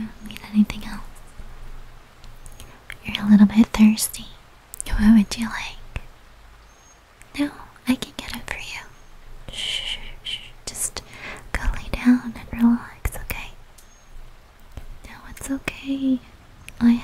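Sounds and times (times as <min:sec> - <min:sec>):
woman whispering: 0:00.0 - 0:01.2, 0:02.6 - 0:06.1, 0:07.3 - 0:13.6, 0:15.0 - 0:17.0.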